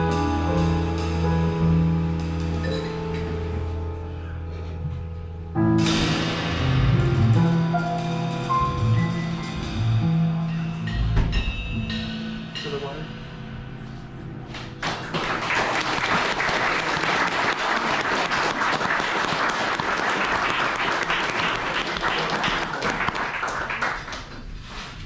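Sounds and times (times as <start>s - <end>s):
jazz trio chord ringing: 0.0s - 14.9s
audience applauding: 14.8s - 24.6s.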